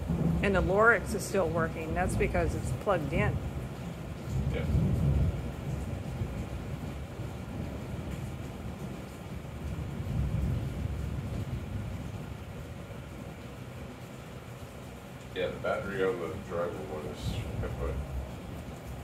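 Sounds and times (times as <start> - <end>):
thunder rumbling: 0.0 - 19.0.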